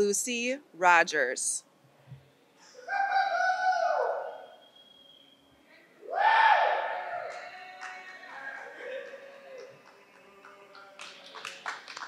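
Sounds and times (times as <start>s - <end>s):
person cheering woo: 2.8s - 4.5s, 6.1s - 7.8s.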